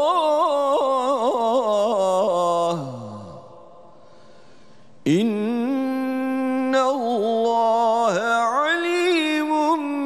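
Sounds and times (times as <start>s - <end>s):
man reciting melodically: 0.0s - 4.2s, 4.9s - 10.0s.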